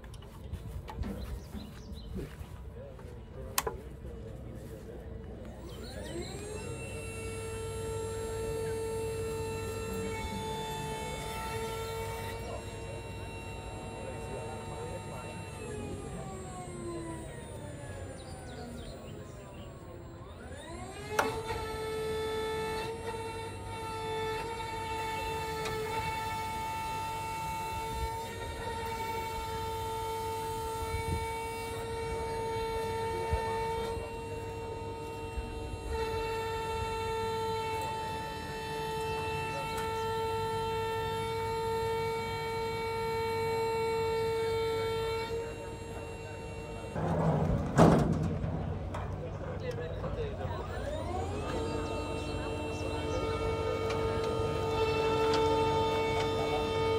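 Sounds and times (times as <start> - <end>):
hydraulic motor whine: 0.0 - 56.9.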